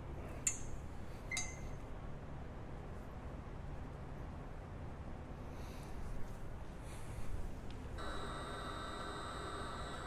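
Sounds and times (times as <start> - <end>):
light metallic clinks: 0.4 - 1.8.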